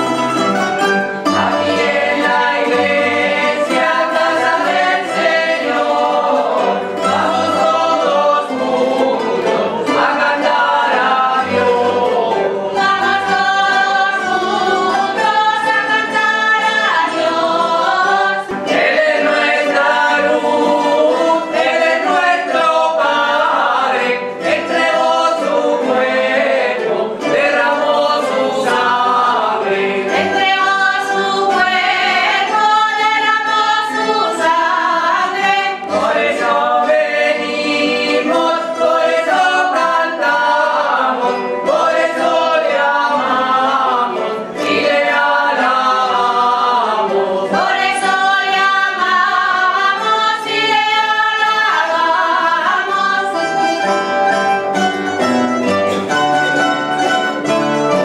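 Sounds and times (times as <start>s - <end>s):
choir singing a hymn: 0.0s - 54.7s
guitars and plucked strings: 0.0s - 58.0s.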